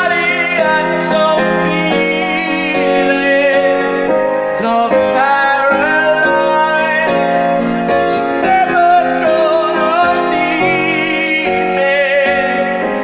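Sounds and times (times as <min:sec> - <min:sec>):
crowd: 0:00.0 - 0:13.0
piano accompaniment: 0:00.0 - 0:13.0
young man singing: 0:00.0 - 0:13.0.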